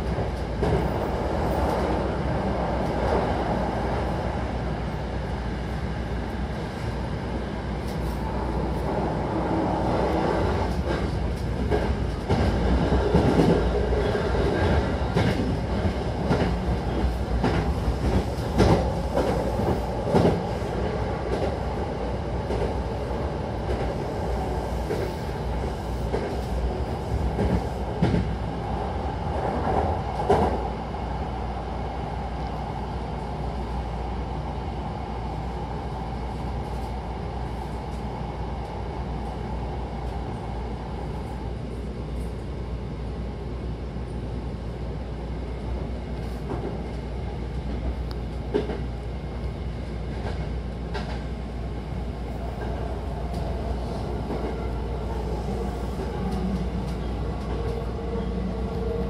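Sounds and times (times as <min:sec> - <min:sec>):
train wheels rumbling: 0:00.0 - 0:31.1, 0:46.1 - 0:59.0.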